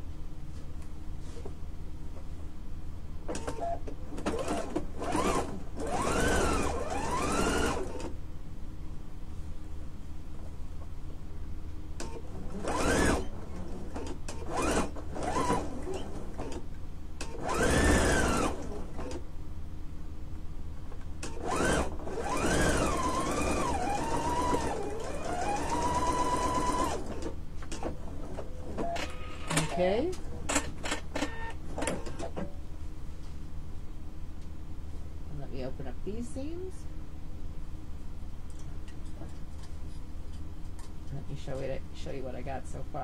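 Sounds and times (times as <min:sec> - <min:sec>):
electric sewing machine stitching: 0:04.2 - 0:08.1, 0:12.4 - 0:16.6, 0:17.2 - 0:19.2, 0:21.2 - 0:27.3.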